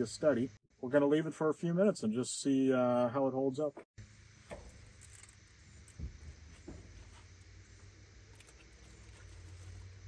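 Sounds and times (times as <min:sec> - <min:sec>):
steady low hum: 0:04.0 - 0:10.0.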